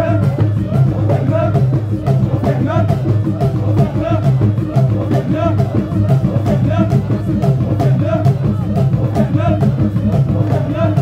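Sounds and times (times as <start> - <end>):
men chanting a song: 0.0 - 11.0
percussion steady beat: 0.0 - 11.0.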